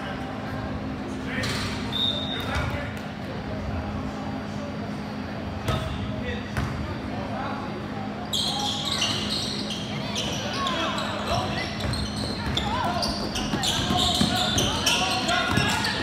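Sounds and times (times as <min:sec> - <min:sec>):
basketball shoes squeaking: 0:08.2 - 0:16.0.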